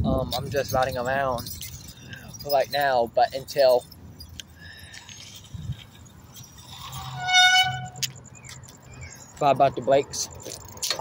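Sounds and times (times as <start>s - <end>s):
wind rumble on microphone: 0.0s - 2.5s, 5.4s - 8.2s
bicycle brakes squealing: 6.3s - 8.2s.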